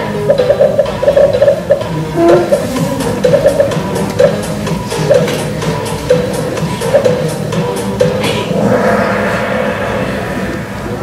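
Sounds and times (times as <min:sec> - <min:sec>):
sharp hit: 0:08.2 - 0:11.0
ringing gong-like tone: 0:08.6 - 0:11.0.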